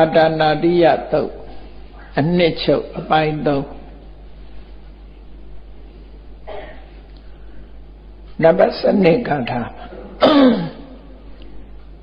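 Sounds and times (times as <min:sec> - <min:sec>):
man speaking: 0:00.0 - 0:03.9, 0:08.4 - 0:10.2.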